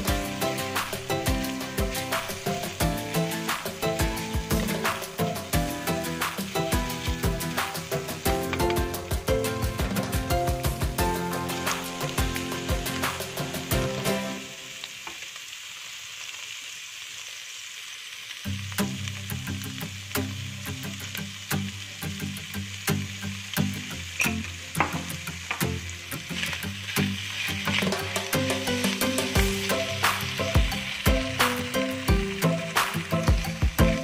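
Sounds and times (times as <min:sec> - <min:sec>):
meat sizzling in a pan: 0:00.0 - 0:34.0
spatula scraping and knocking pan: 0:24.2 - 0:25.7.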